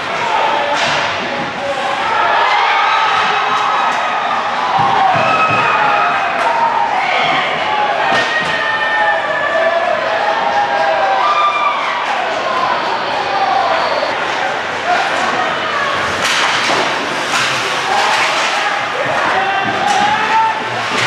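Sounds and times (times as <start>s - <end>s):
crowd cheering and shouting: 0.0s - 21.0s.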